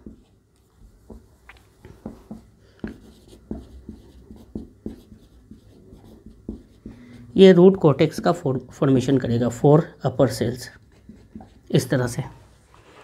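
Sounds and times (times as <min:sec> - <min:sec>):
marker pen on whiteboard: 0:00.0 - 0:13.0.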